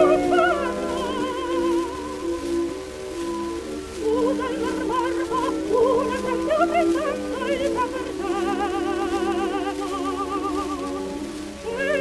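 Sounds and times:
instrumental accompaniment notes: 0.0s - 12.0s
record surface hiss: 0.0s - 12.0s.

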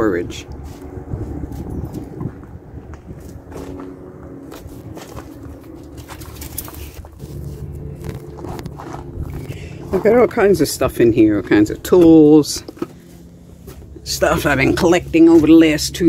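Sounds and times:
low mechanical hum: 0.0s - 16.0s
footsteps: 0.6s - 15.8s.

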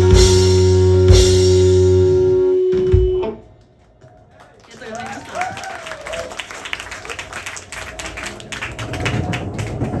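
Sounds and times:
audience applauding: 3.8s - 10.0s.

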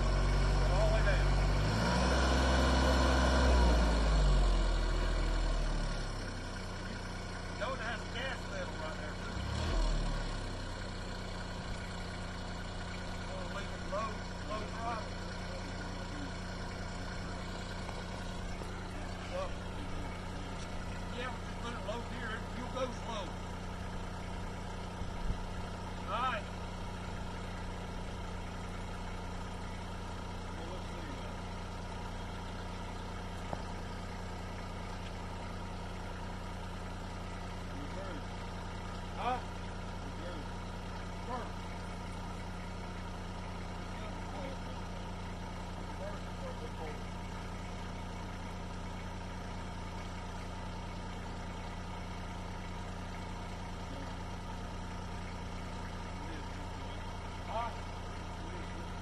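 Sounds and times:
tractor engine idling: 0.0s - 59.0s.

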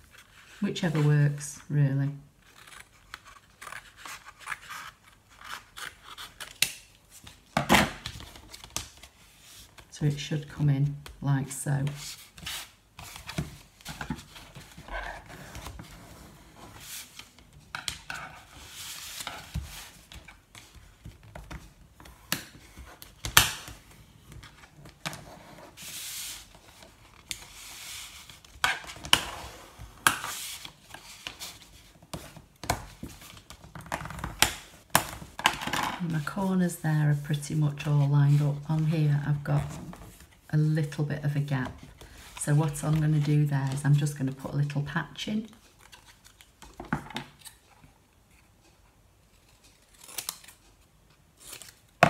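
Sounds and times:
card rustling and rubbing: 0.0s - 1.4s, 2.4s - 7.5s, 11.8s - 34.2s.

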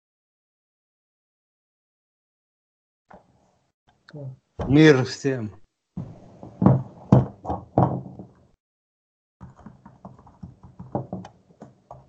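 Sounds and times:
dull thumps: 4.6s - 5.0s, 6.0s - 8.6s, 9.4s - 12.0s.

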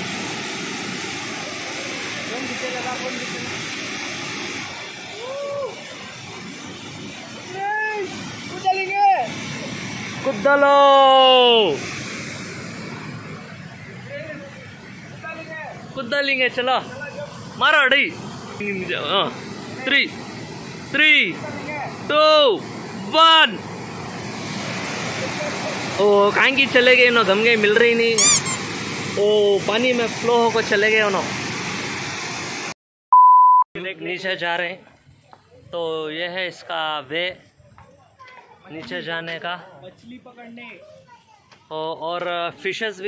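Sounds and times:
water rushing down spillway: 0.0s - 32.8s.

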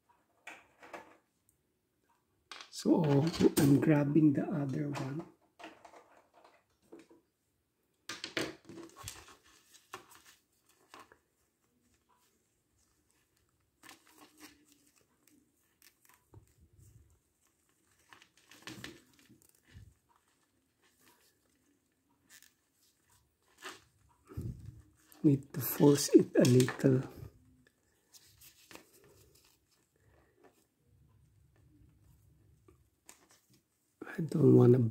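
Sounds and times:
plastic figure rustling and clicking: 2.6s - 7.3s, 8.1s - 33.8s.

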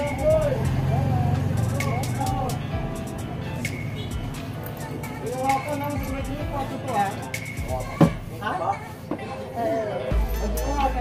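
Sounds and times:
music with singing and beat: 0.0s - 11.0s.

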